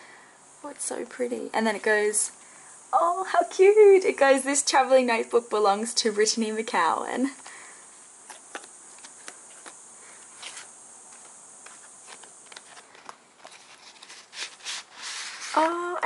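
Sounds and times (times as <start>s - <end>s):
paper rustling: 8.3s - 15.8s.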